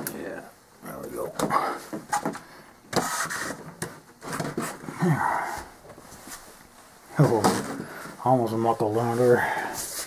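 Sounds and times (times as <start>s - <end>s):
rustling and scraping handling noise: 1.8s - 10.0s.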